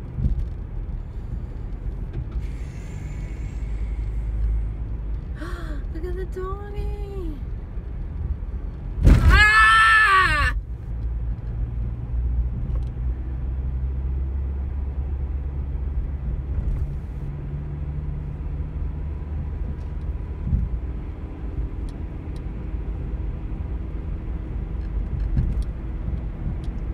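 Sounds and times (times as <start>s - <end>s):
car road noise: 0.0s - 26.9s
engine hum: 0.0s - 26.9s
low thump: 9.0s - 9.4s.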